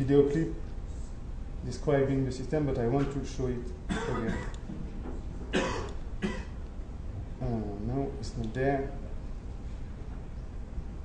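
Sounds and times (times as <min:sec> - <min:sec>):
steady low hum: 0:00.0 - 0:11.0
man coughing: 0:03.9 - 0:04.6, 0:05.5 - 0:06.6.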